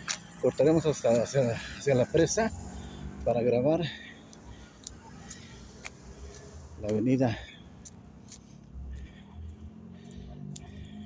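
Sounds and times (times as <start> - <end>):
faint footsteps: 4.0 - 11.0.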